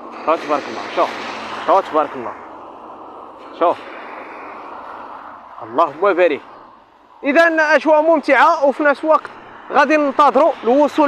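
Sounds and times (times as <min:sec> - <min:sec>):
car tyres hissing on wet road: 0:00.0 - 0:11.0.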